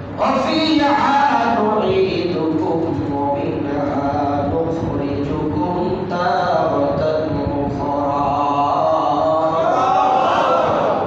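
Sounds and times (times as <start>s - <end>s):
man chanting: 0.2s - 10.2s.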